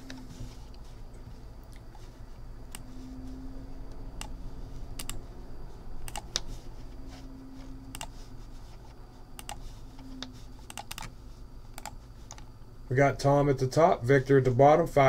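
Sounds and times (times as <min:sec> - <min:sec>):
keyboard and mouse clicks: 0:05.0 - 0:05.2, 0:06.0 - 0:06.5, 0:07.9 - 0:08.1, 0:09.4 - 0:11.1, 0:11.8 - 0:12.5.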